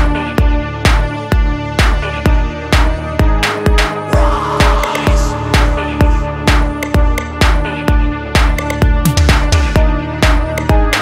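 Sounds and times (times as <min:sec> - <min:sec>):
kick drum beat: 0:00.0 - 0:11.0
sustained synth chords: 0:04.0 - 0:08.2.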